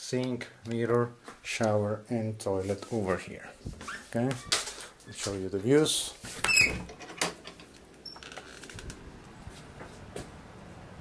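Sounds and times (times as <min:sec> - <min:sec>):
window frame ticks and rattles: 0:06.4 - 0:09.0.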